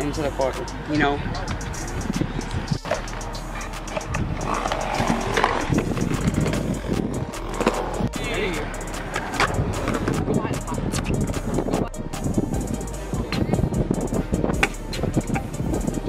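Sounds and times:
background music: 0.0s - 16.0s
scooter wheels rolling on concrete: 2.2s - 11.8s
scooter deck clacking on concrete: 9.0s - 10.3s.

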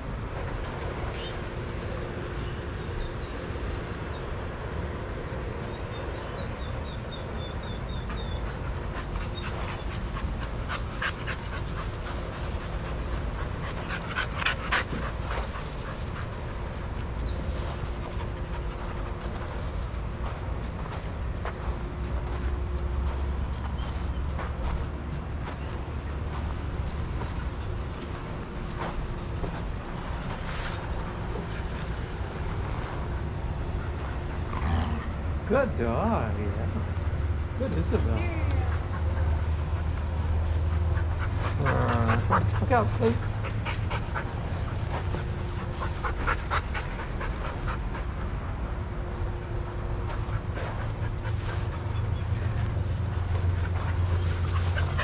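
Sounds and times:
low background rumble: 0.0s - 55.0s
dogs panting: 0.1s - 35.8s, 36.4s - 55.0s.

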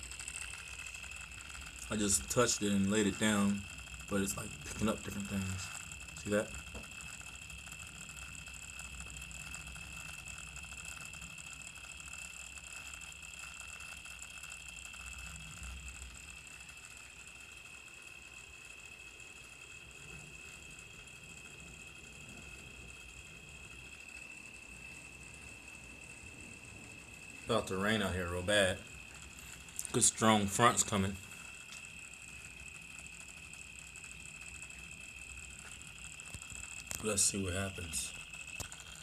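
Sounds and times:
high-pitched electronic whine: 0.0s - 39.0s
low hum: 0.0s - 39.0s.

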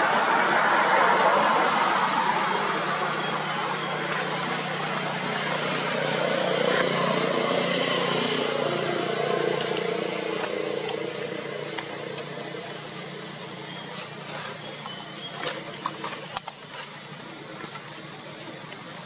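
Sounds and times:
motor vehicle running: 0.0s - 19.0s.

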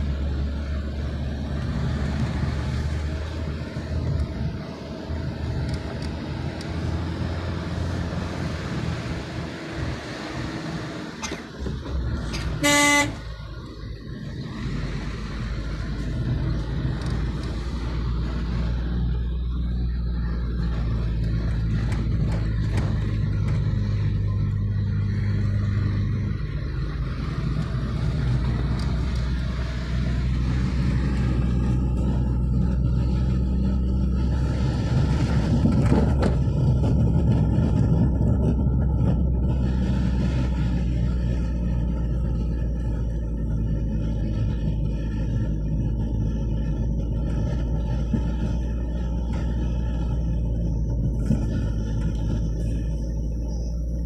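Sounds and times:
car engine and tyre hum: 0.0s - 54.0s.

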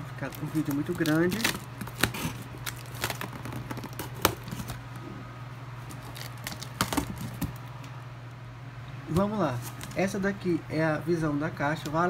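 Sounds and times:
scissors cutting packing tape: 0.4s - 4.8s.

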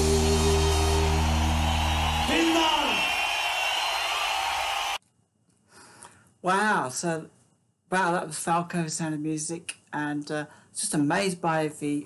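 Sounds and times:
live band sustained chord: 0.0s - 2.2s
crowd cheering: 0.0s - 5.0s.

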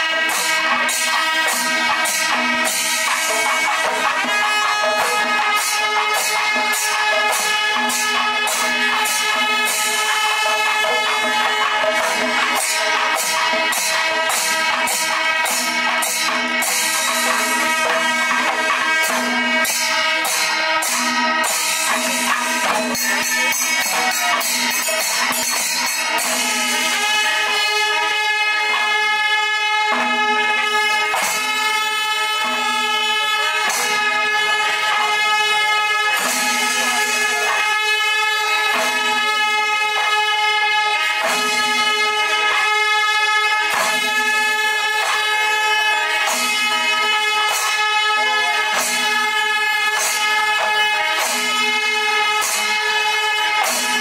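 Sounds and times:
jingling cymbals: 0.0s - 54.0s
drums playing: 0.1s - 29.1s, 29.8s - 54.0s
horns sounding long notes: 0.1s - 53.9s.

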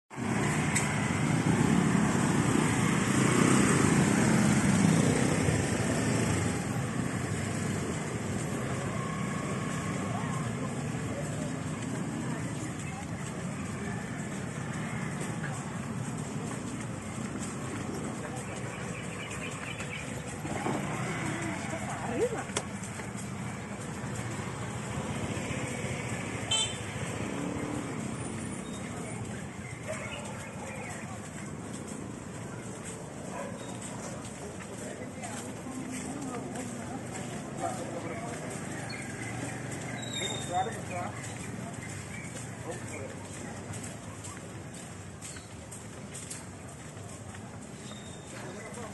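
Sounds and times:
scooter engines running: 0.1s - 48.9s
traffic noise: 0.1s - 48.9s
people chattering: 0.2s - 48.9s.

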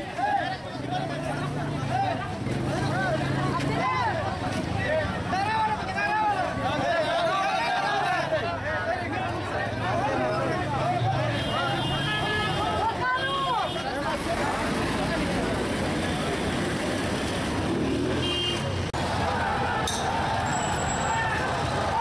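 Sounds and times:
crowd voices and shouts: 0.0s - 22.0s
vehicle engines running: 0.0s - 22.0s.

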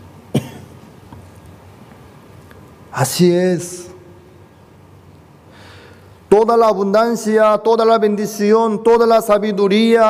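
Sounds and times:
short cough: 0.3s - 0.8s.

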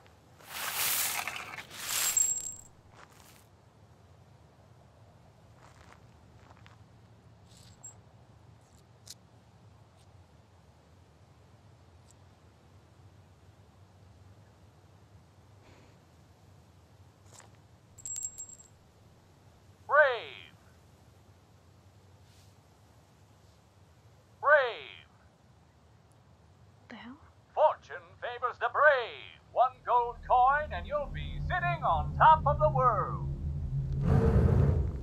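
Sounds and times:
push broom scraping gravel: 0.4s - 3.4s
coin clinking into machine: 1.2s - 2.7s
coin dropping with metallic ring: 1.8s - 2.7s, 18.0s - 18.7s.

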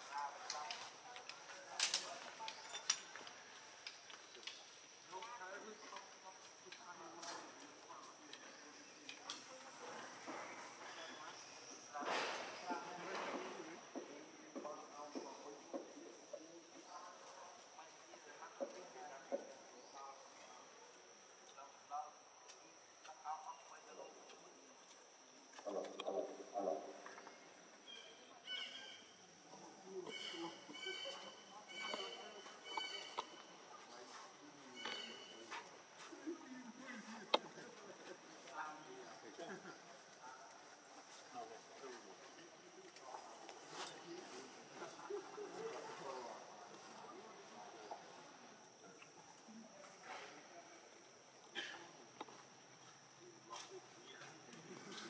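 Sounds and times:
indistinct voices talking: 22.2s - 50.0s.

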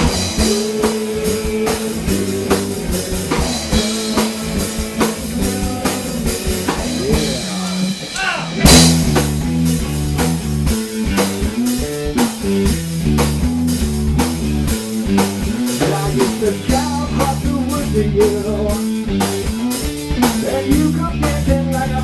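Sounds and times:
rock band instrumental: 0.0s - 22.0s.

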